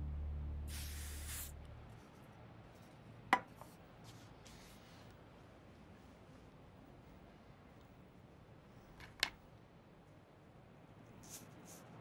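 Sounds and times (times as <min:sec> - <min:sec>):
aerosol can hissing: 0:00.7 - 0:01.5.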